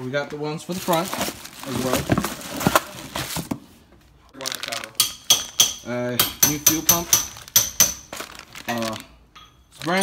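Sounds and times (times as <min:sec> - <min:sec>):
plastic packaging crinkling: 0:00.6 - 0:03.5, 0:04.4 - 0:05.0, 0:07.3 - 0:09.2.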